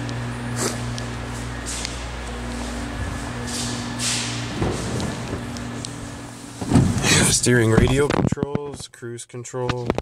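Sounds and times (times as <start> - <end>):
steady low hum: 0.0 - 9.0
footsteps: 0.5 - 8.8.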